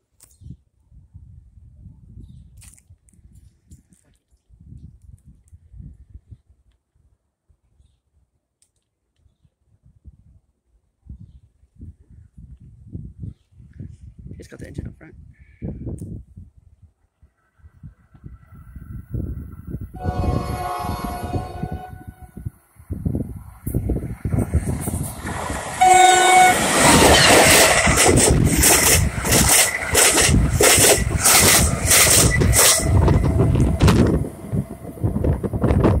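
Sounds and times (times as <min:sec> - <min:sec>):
train horn: 0:20.0 - 0:22.5, 0:25.8 - 0:27.3
train wheels clattering: 0:26.5 - 0:34.2.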